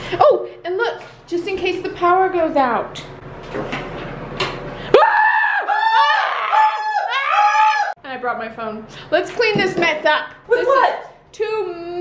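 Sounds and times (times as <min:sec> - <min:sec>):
high-pitched drawn-out scream: 0:04.9 - 0:08.0.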